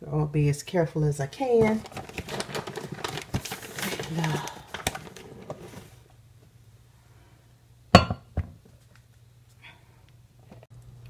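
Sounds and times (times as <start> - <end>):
flour bag rustling: 1.5 - 6.0
cup knocking on glass: 8.0 - 8.5.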